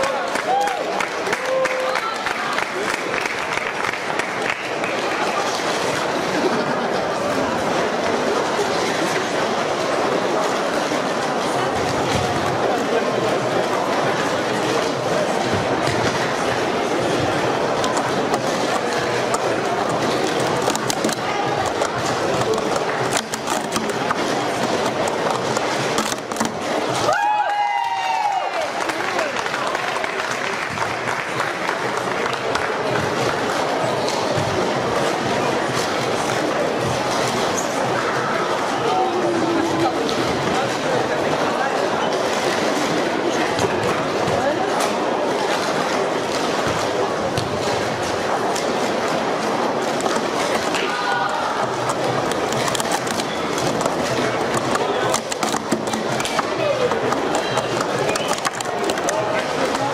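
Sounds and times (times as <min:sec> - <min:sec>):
hubbub of many voices: 0:00.0 - 0:59.9
plastic cups clattering: 0:10.0 - 0:27.1, 0:39.5 - 0:59.9
sharp plastic cup clicks: 0:17.8 - 0:27.0, 0:51.8 - 0:59.9.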